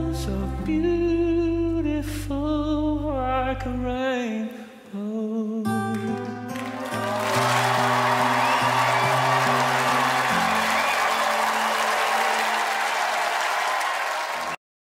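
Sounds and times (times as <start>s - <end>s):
audience applause: 6.6s - 14.6s.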